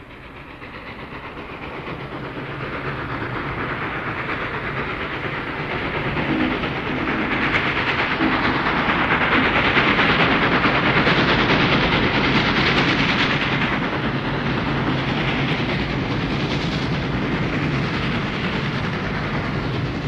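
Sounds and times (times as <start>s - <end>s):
locomotive chugging: 0.0s - 20.0s.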